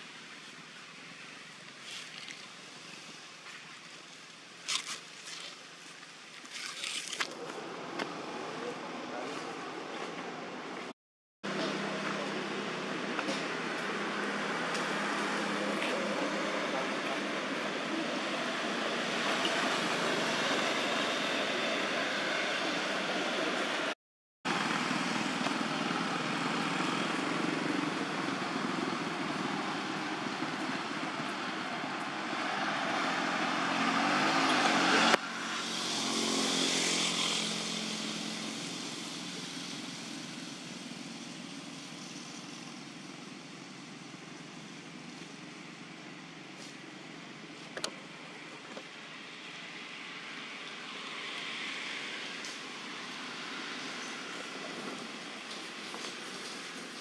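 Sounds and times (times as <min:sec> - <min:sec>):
motor traffic: 0:07.2 - 0:57.0
vehicle engine revving: 0:11.5 - 0:39.0.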